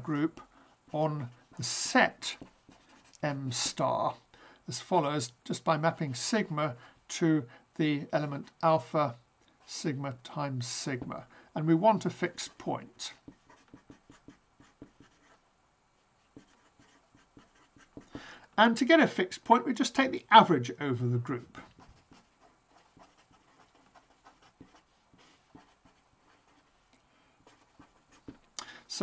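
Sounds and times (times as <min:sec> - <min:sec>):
marker writing on paper: 0:01.5 - 0:03.8, 0:13.2 - 0:15.4, 0:16.3 - 0:18.3, 0:21.5 - 0:26.8, 0:27.4 - 0:28.5.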